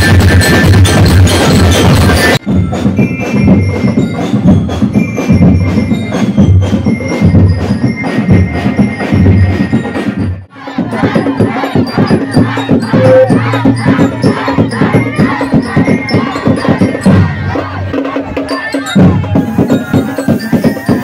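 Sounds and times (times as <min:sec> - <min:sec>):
drums pounding fast rhythm: 0:00.0 - 0:21.0
ringing percussion strikes: 0:00.0 - 0:21.0
struck wooden and metal percussion: 0:00.0 - 0:21.0.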